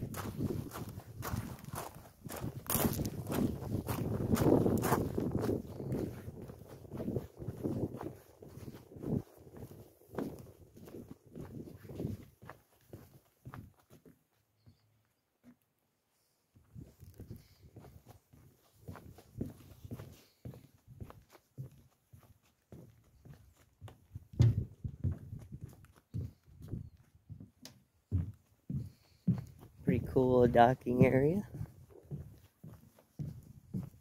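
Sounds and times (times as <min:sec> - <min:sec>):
footsteps on wooden planks: 0:00.0 - 0:15.8, 0:16.5 - 0:34.0.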